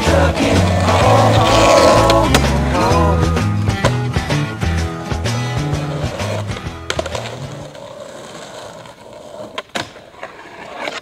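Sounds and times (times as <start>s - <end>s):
background music: 0.0s - 7.7s
skateboard wheels rolling on concrete: 0.0s - 11.0s
skateboard clacks: 5.1s - 11.0s.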